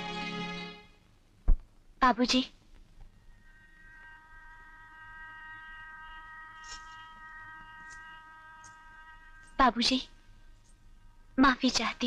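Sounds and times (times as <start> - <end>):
soft high chord film score: 0.0 - 1.0.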